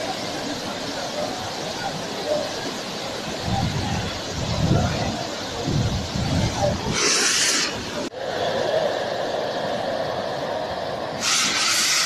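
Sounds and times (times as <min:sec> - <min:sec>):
waterfall crashing onto rock: 0:03.8 - 0:08.1.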